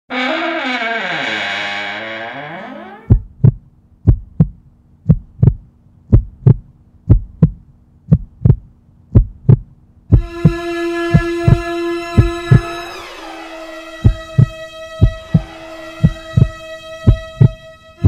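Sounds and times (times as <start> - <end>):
low steady hum: 3.0 - 13.0
heartbeat thumps: 3.1 - 12.7, 14.0 - 17.6.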